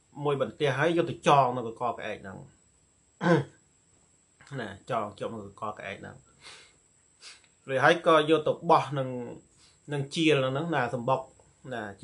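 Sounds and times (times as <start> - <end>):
man clearing his throat: 3.2 - 3.6.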